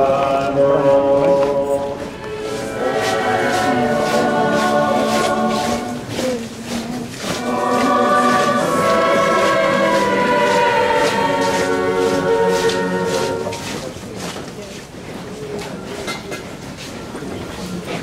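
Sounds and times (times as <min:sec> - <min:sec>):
choir singing a hymn: 0:00.0 - 0:13.9.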